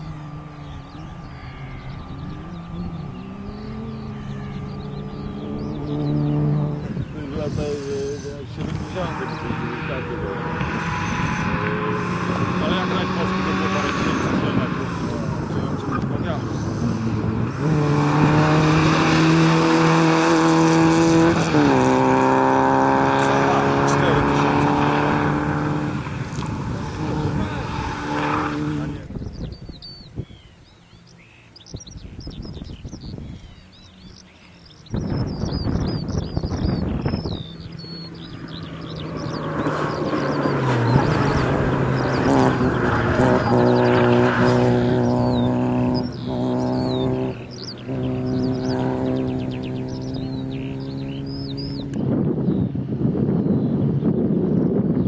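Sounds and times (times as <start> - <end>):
birdsong: 0.0 - 55.0
car engine at high revs: 0.0 - 55.0.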